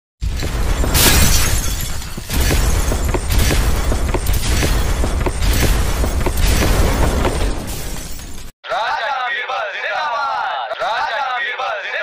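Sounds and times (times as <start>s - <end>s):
glass shattering: 0.2s - 8.5s.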